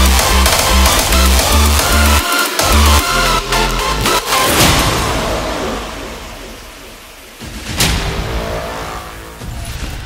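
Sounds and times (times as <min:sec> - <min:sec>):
heavy kick and bass: 0:00.0 - 0:09.9
whooshing noise sweep: 0:04.2 - 0:10.0.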